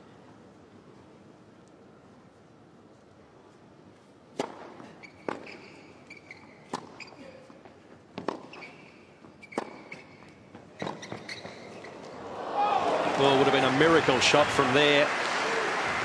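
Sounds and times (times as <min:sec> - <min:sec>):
racket striking tennis ball: 0:04.3 - 0:05.7, 0:08.2 - 0:08.7
sneaker squeaks on court: 0:04.8 - 0:07.5, 0:08.2 - 0:12.0.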